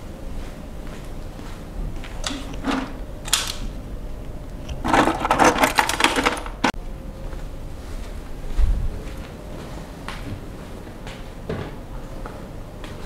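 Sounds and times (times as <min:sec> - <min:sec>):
small hard objects clattering: 0:04.7 - 0:06.8.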